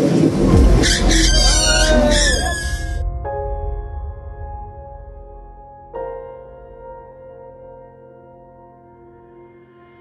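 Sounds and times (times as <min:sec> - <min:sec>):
loud low rumble: 0:00.0 - 0:07.2
high wavering squeal: 0:00.3 - 0:03.0.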